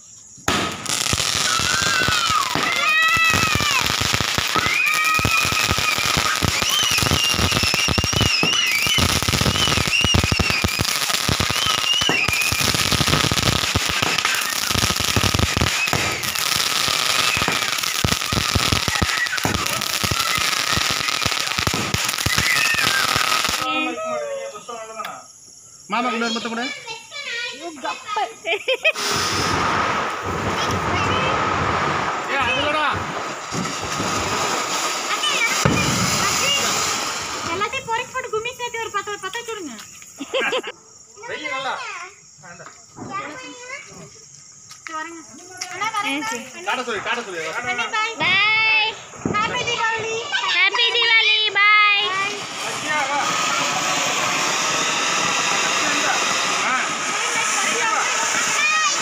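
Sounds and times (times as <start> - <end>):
fireworks crackling pops: 0.0 - 23.9, 24.9 - 59.0
faint firework whistles: 0.0 - 59.0
children calling out: 0.9 - 24.6, 34.4 - 37.6, 49.3 - 59.0.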